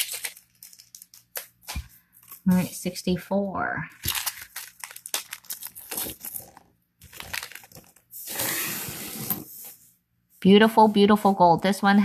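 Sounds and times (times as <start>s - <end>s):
plastic bag crinkling: 0.0s - 1.6s, 4.0s - 8.1s.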